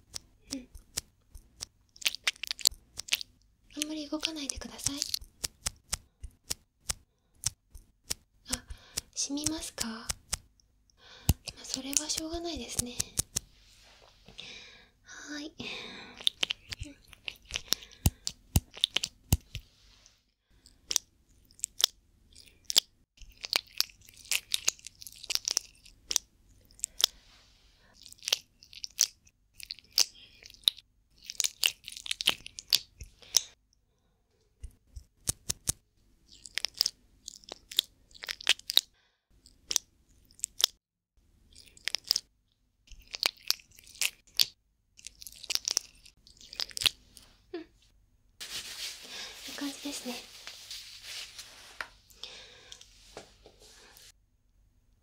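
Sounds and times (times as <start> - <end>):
hands handling cotton: 48.4 - 52.2.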